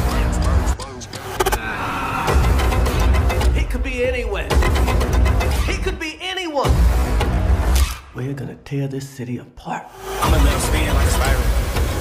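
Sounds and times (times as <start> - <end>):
tense music: 0.0 - 8.2, 9.9 - 12.0.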